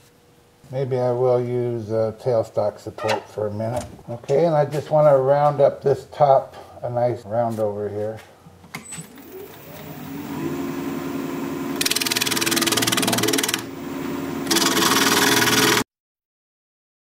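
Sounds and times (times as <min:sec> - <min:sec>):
lathe motor hum: 0:09.2 - 0:15.8
gouge cutting wood hissing: 0:11.7 - 0:13.7, 0:14.4 - 0:15.8.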